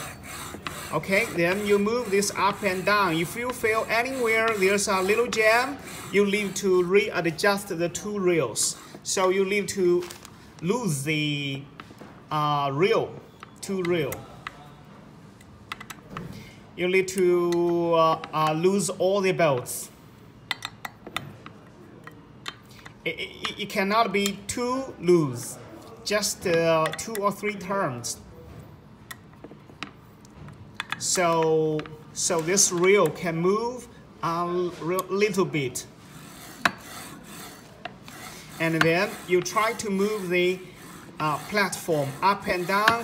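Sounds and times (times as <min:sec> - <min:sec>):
low rubbing and scraping: 0:00.0 - 0:07.4, 0:35.9 - 0:43.0.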